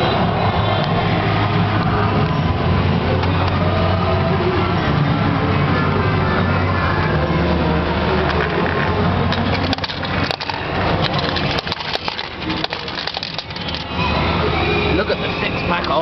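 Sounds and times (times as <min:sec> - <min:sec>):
fruit machine sounds: 0:06.7 - 0:16.0
coins dropping into tray: 0:09.3 - 0:13.9.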